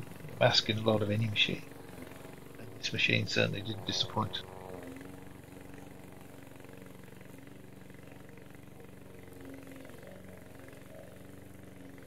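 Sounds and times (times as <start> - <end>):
mower engine droning: 0.0 - 12.0.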